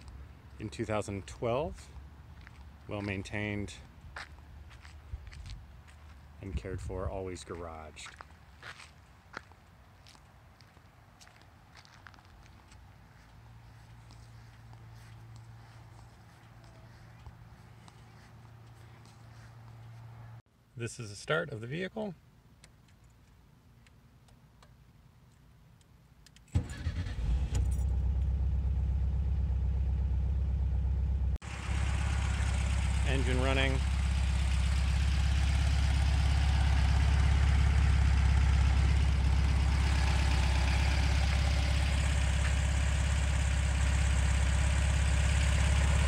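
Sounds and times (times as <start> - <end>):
faint footsteps: 1.3 - 20.4
car engine starting and idling: 26.4 - 46.0.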